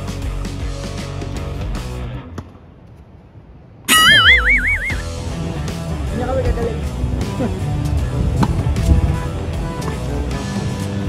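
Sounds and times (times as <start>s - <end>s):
background music: 0.0s - 2.4s, 3.9s - 11.0s
cartoon boing: 3.9s - 5.1s.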